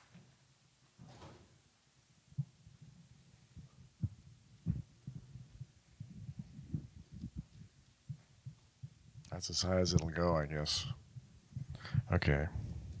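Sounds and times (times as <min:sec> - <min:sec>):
microphone handling thumps: 0:03.6 - 0:09.0.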